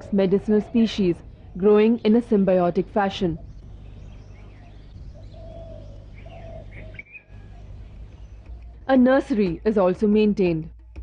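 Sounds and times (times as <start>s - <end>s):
birds calling low: 0.0s - 9.2s
steady low hum: 0.0s - 9.2s.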